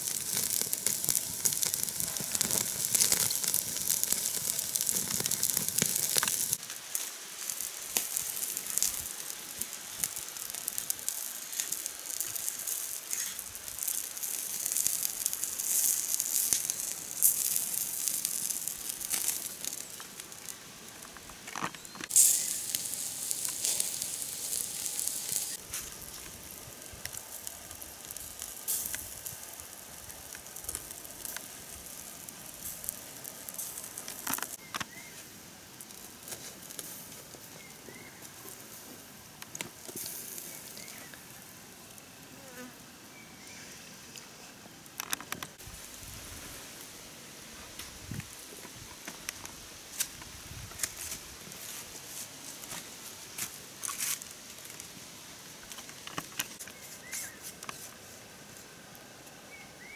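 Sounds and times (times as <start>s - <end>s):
fire crackling and popping: 0.0s - 42.8s, 44.1s - 59.9s
fat sizzling: 0.0s - 43.8s.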